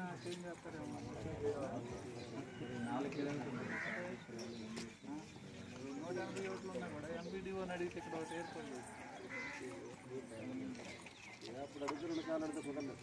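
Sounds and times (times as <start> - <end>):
men talking: 0.0 - 13.0.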